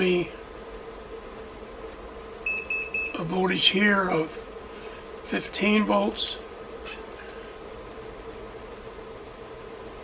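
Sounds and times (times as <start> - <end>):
faint hum: 0.0 - 10.0
short electronic beeps: 2.5 - 3.2.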